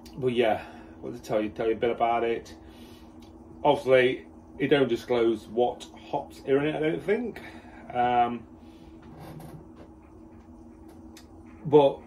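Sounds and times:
low steady hum: 0.0s - 12.0s
faint scratches: 8.8s - 11.0s.

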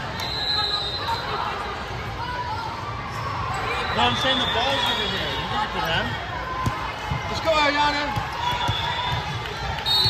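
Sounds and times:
hubbub of people talking: 0.0s - 10.0s.

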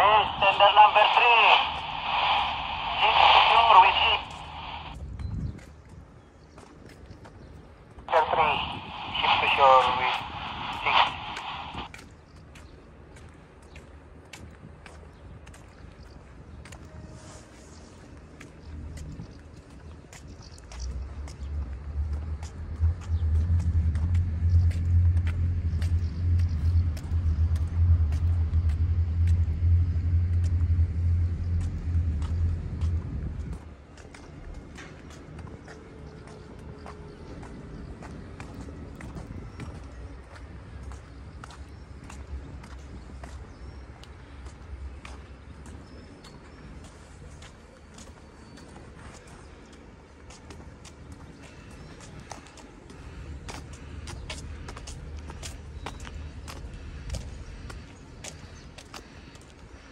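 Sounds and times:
loud low rumble: 0.0s - 5.0s, 20.8s - 35.1s.

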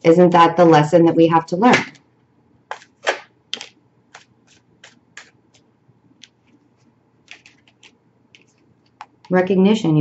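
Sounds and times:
cards being shuffled: 2.7s - 9.2s.

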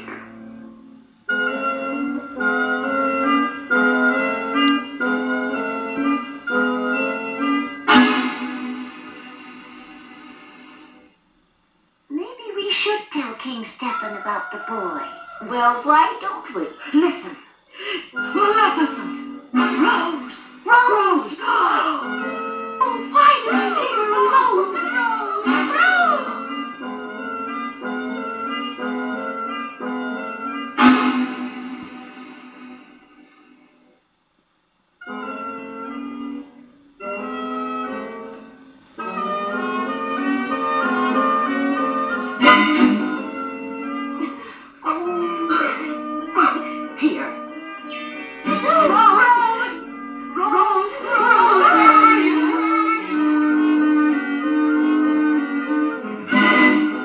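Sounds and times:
film soundtrack music: 0.0s - 11.1s.

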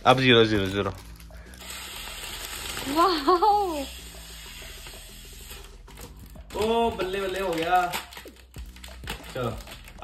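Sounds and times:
foil balloon inflating hiss: 1.6s - 5.7s.

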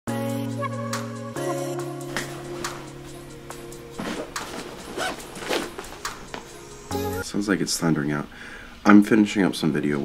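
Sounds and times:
sustained chord music: 0.1s - 7.3s
fabric backpack rustling: 2.0s - 6.9s.

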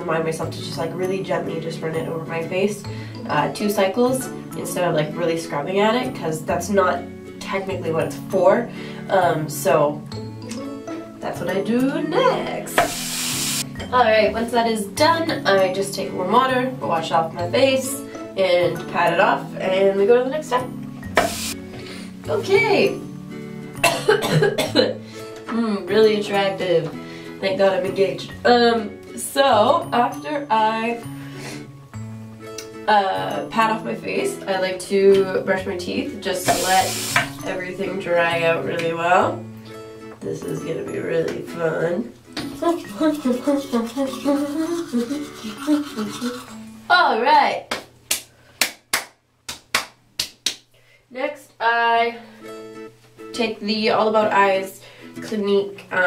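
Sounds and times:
background music: 0.0s - 49.2s, 51.3s - 56.0s
woman coughing: 23.8s - 25.0s.

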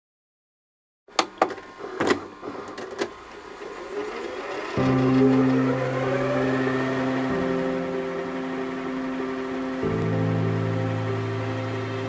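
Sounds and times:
film projector rattling: 1.2s - 6.0s.

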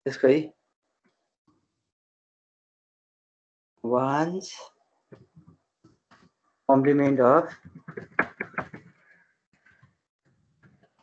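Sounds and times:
keyboard typing: 7.4s - 9.1s.

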